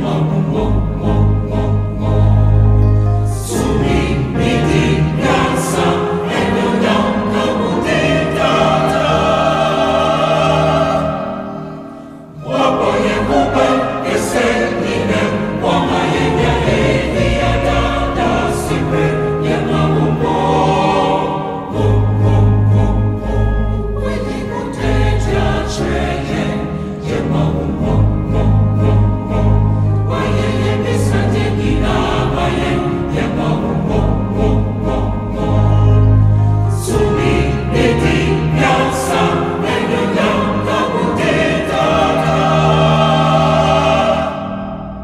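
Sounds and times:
keyboards: 0.0 - 45.0
mixed choir singing gospel: 0.0 - 45.0.

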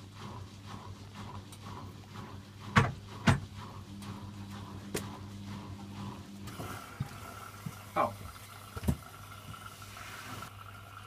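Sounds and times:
washing machine humming: 0.0 - 11.0
hiss: 9.6 - 10.5.

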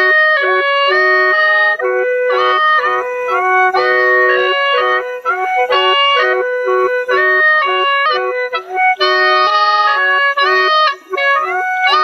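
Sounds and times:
gourd mouth organ melody: 0.0 - 12.0.

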